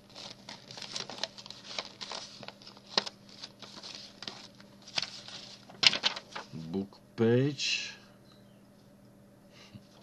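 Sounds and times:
paper rustling and crinkling: 0.0 - 6.6.

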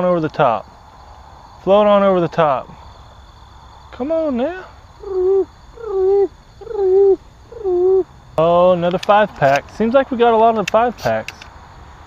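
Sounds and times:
man hooting: 4.4 - 8.1.

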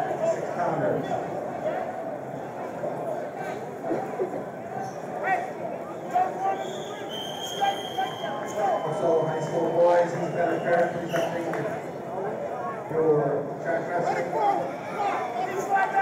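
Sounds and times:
crowd murmur in a hall: 0.0 - 16.0
referee's whistle blast: 6.5 - 9.0.

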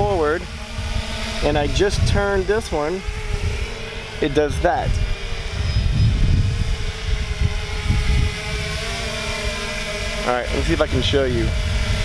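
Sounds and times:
drone rotors humming: 0.0 - 12.0
wind rumbling on microphone: 0.0 - 12.0.

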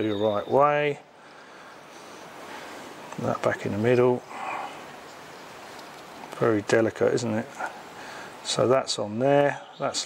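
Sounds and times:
faint hiss: 0.0 - 10.0.

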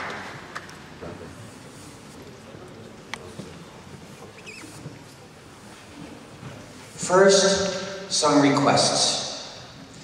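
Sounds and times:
audience rustling: 0.0 - 10.0.

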